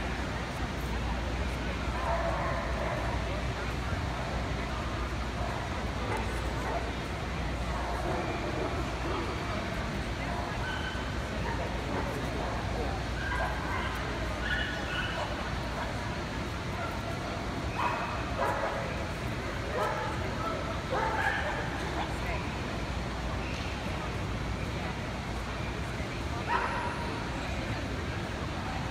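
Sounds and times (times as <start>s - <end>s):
crowd chatter: 0.0s - 28.9s.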